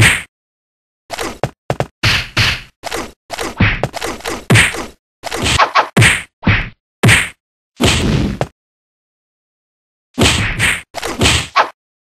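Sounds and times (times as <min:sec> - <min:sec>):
punches and whacks: 0:00.0 - 0:00.3, 0:01.1 - 0:08.5, 0:10.2 - 0:11.8.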